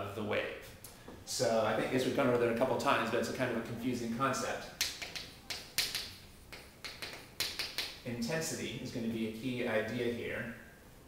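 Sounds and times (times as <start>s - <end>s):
chalk tapping on chalkboard: 4.8s - 8.0s.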